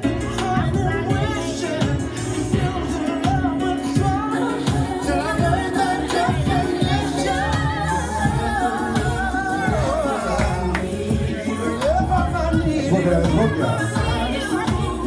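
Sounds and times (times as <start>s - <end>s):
song with vocal over beat: 0.0s - 15.0s.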